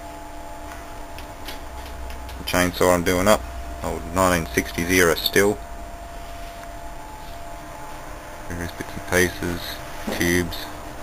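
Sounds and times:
air conditioner humming: 0.0s - 11.0s.

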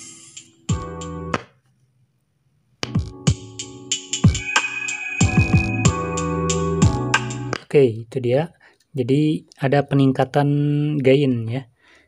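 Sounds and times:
music from a loudspeaker: 2.9s - 7.6s.

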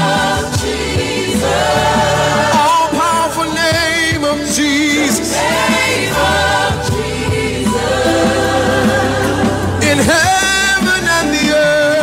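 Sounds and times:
steady musical accompaniment: 0.0s - 12.0s.

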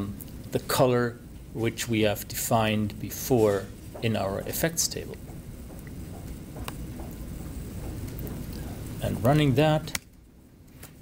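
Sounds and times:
background hiss: 0.0s - 11.0s
low room rumble: 0.0s - 11.0s.

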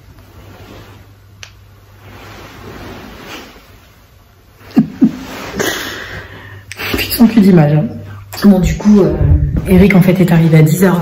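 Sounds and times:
soft rustling: 0.0s - 4.3s.

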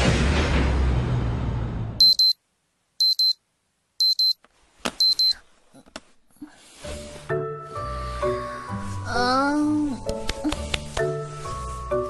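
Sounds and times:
alarm clock double beeps: 2.0s - 2.4s, 3.0s - 3.4s, 4.0s - 4.4s, 5.0s - 5.4s
soft music with held notes: 6.8s - 12.0s.

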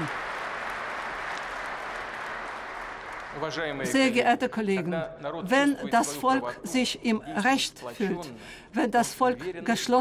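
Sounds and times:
large audience applauding: 0.0s - 4.3s.

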